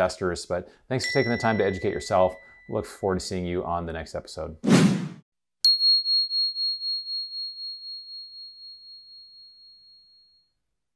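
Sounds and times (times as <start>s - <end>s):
high pure chime: 1.0s - 3.5s, 5.7s - 10.6s.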